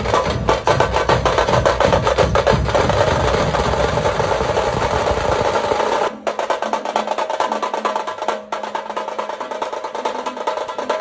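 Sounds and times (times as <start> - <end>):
rapid drumming: 0.0 - 11.0.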